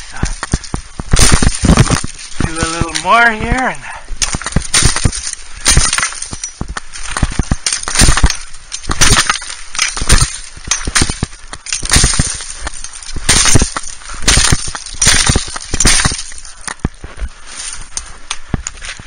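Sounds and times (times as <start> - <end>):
axe chopping brush stems: 0.2 - 3.6, 4.2 - 17.0.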